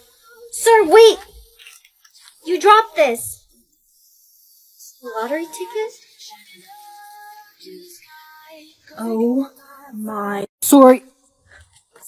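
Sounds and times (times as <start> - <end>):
faint high-pitched singing: 0.0 - 10.5.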